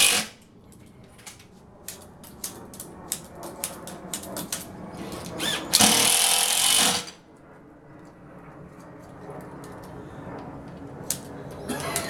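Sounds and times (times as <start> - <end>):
cordless power tool running: 0.0 - 0.4, 5.0 - 7.2.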